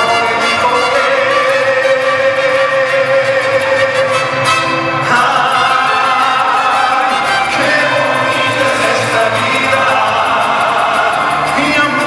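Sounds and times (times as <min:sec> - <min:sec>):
mariachi band strings and trumpets: 0:00.0 - 0:12.0.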